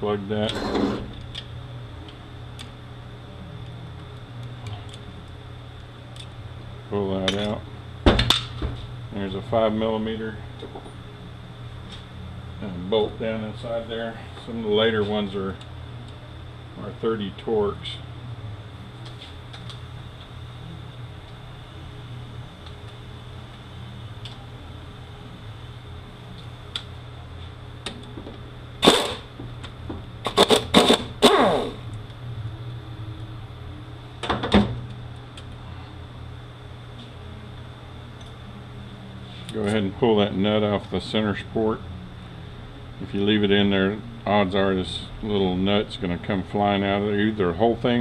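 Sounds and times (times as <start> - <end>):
steady low hum: 0.0 - 48.0
air tool bursts: 28.8 - 29.3, 30.2 - 31.8.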